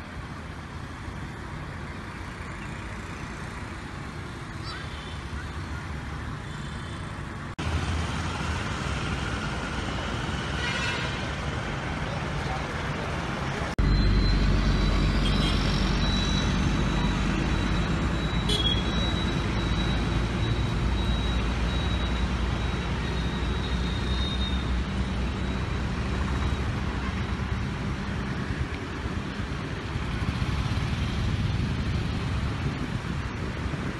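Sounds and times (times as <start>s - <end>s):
road traffic rumble: 0.0s - 33.9s.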